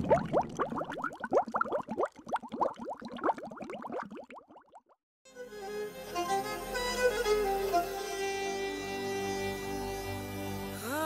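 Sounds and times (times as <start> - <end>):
rising bubbly blips: 0.0 - 5.0.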